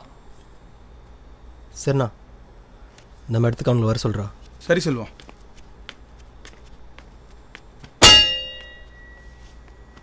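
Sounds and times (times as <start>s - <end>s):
sharp metallic clang: 8.0s - 9.4s.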